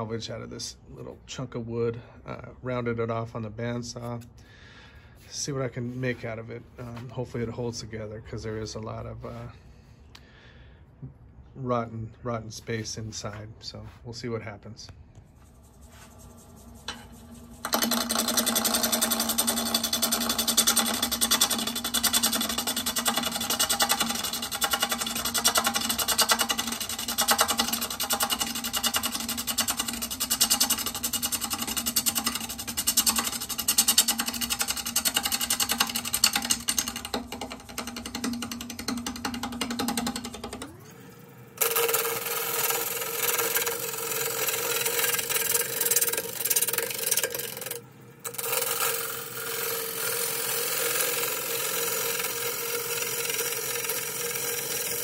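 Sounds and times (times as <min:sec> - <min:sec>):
lathe humming: 0:15.5 - 0:55.0
gouge cutting wood with rattling: 0:16.4 - 0:40.7, 0:41.6 - 0:55.0.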